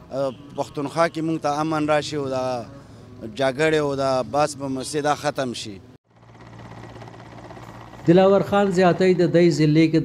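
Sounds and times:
helicopter hovering: 4.6s - 9.8s.

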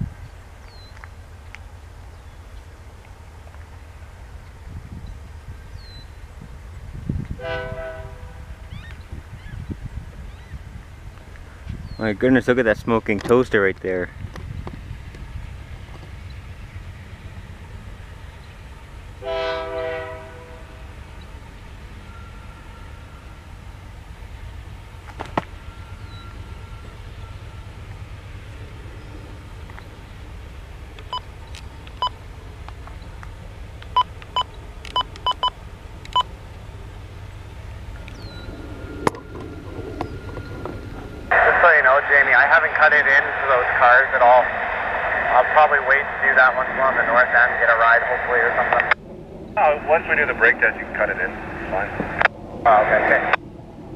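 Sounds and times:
diesel locomotive engine rumble: 0.0s - 53.9s
train horn blast: 7.4s - 8.7s, 19.2s - 21.0s
radio voice: 41.3s - 49.0s, 49.6s - 53.4s.

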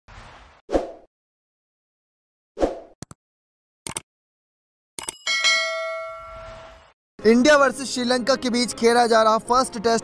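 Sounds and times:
quick clicks: 3.9s - 4.1s
bright bell ding: 5.0s - 6.8s.

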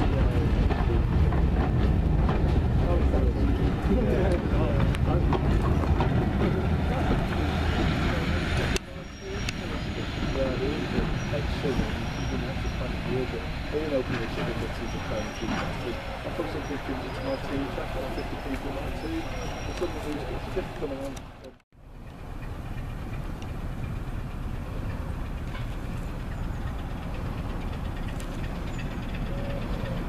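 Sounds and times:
people talking: 0.0s - 1.4s, 2.8s - 21.6s
train wheels rumbling on rails: 0.0s - 30.0s.

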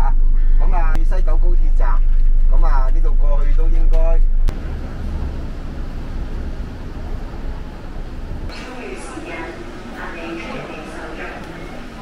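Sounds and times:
man talking: 0.0s - 4.3s
low rumble inside a coach: 0.0s - 12.0s
outdoor background noise: 0.0s - 12.0s.

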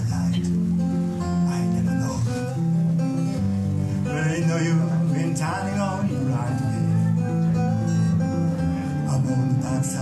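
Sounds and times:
acoustic guitar strumming: 0.0s - 10.0s
person singing: 4.0s - 10.0s.

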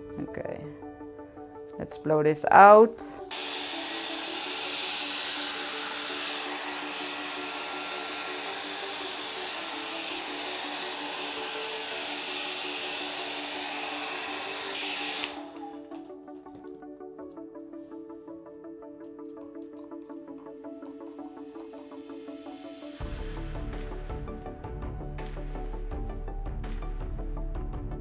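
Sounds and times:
background music: 0.0s - 28.0s
hair dryer blowing: 3.3s - 16.0s.

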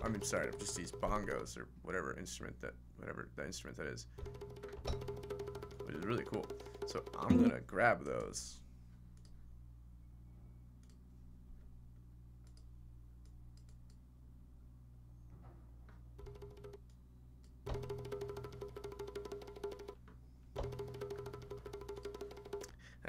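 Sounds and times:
rapid bongo roll: 0.0s - 1.5s, 4.1s - 7.6s, 16.2s - 16.8s, 17.7s - 20.0s, 20.6s - 22.8s
low steady hum: 0.0s - 4.2s, 4.8s - 18.8s
faint clicks: 12.4s - 14.0s.

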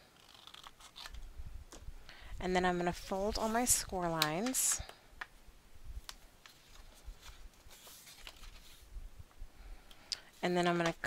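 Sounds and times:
paper rustling: 6.4s - 8.9s.

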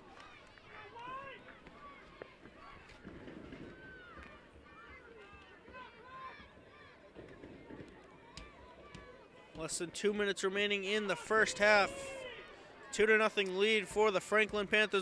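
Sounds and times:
distant shouts and calls: 3.6s - 9.6s, 10.3s - 13.2s.

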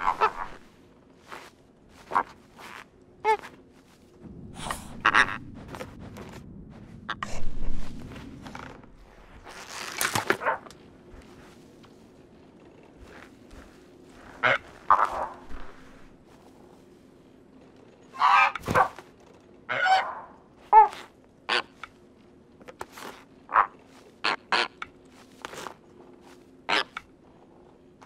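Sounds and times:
scuffling in snow: 0.0s - 17.2s.

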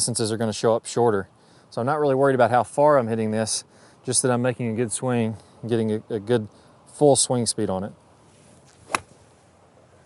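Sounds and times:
golf club striking ball: 8.7s - 9.2s.

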